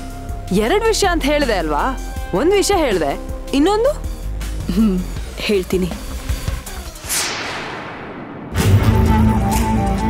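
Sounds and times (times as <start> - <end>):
background music: 0.0 - 10.0
falling whoosh: 7.0 - 9.6
loud hit: 7.0 - 9.7.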